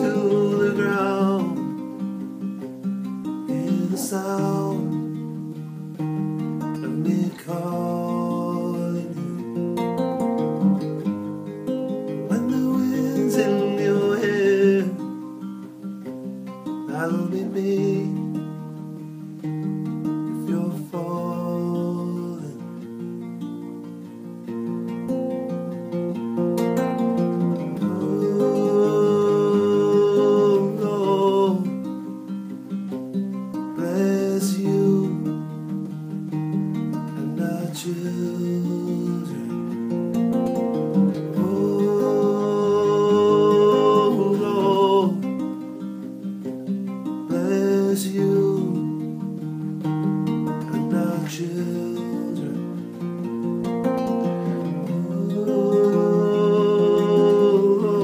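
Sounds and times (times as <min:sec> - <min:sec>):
man singing: 0:00.0 - 0:02.1, 0:03.2 - 0:05.4, 0:06.0 - 0:11.2, 0:12.0 - 0:15.6, 0:16.6 - 0:19.6, 0:20.3 - 0:23.0, 0:27.2 - 0:32.2, 0:33.5 - 0:40.0, 0:40.6 - 0:49.6, 0:50.4 - 0:58.0
classical guitar strumming: 0:00.0 - 0:58.0.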